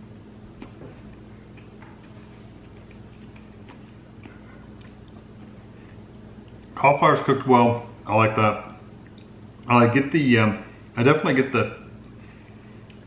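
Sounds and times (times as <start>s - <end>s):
low steady hum: 0.0s - 13.0s
person chewing food: 0.5s - 6.8s, 8.8s - 9.7s, 12.0s - 13.0s.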